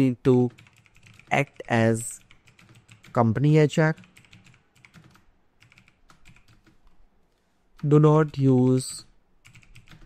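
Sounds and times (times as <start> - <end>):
typing on computer keyboard: 0.4 - 3.2, 3.9 - 7.0, 7.8 - 10.0.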